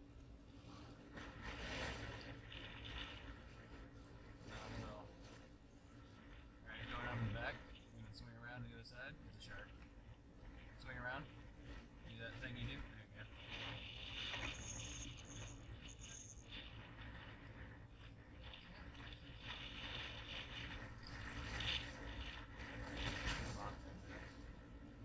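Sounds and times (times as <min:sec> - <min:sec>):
water sounds: 0:00.0 - 0:25.0
wind rumble on microphone: 0:00.0 - 0:25.0.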